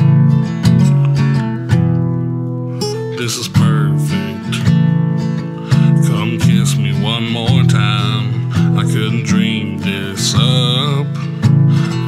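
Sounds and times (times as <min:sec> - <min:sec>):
acoustic guitar strumming: 0:00.0 - 0:12.0
man singing wordlessly: 0:02.9 - 0:04.8, 0:05.7 - 0:12.0.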